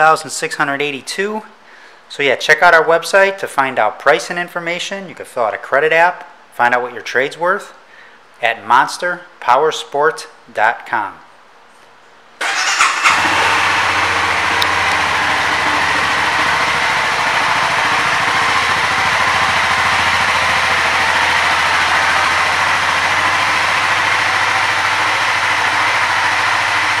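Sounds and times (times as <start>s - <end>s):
motorcycle engine idling: 12.4s - 27.0s.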